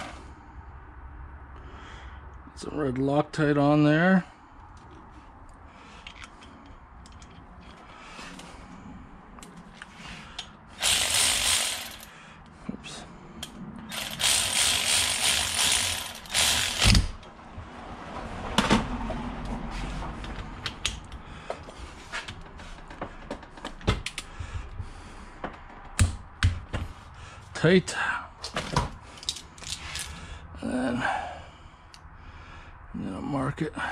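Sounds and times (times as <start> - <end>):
cordless ratchet running: 10.8 - 12.1, 13.9 - 17.2.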